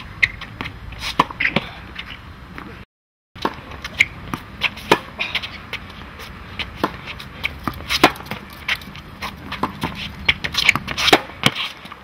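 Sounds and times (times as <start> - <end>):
racket hitting tennis ball: 0.0 - 2.7, 3.4 - 12.0.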